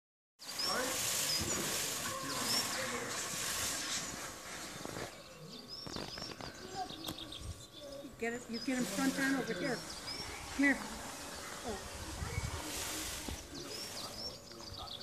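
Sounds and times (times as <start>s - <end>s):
loud rustling hiss: 0.4s - 6.8s, 8.5s - 15.0s
small birds chirping: 0.4s - 15.0s.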